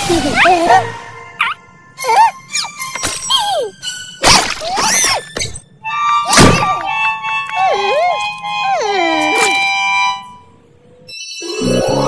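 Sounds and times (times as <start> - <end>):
background music: 0.0 - 12.0
cartoon thunk: 6.3 - 6.8.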